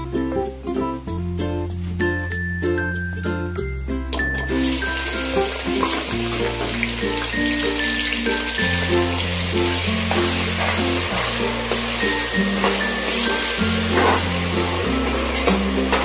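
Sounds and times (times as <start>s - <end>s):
background music: 0.0s - 16.0s
food sizzling in hot oil: 4.2s - 16.0s.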